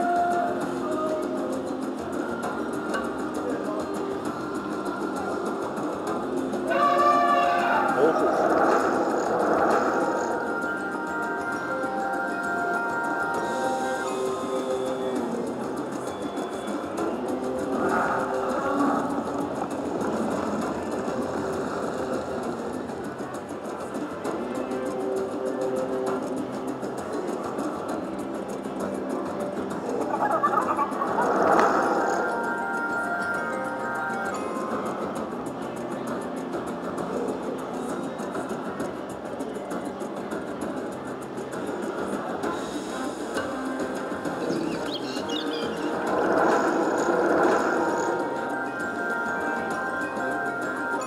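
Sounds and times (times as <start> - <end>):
slot machine bonus music: 44.4 - 51.0.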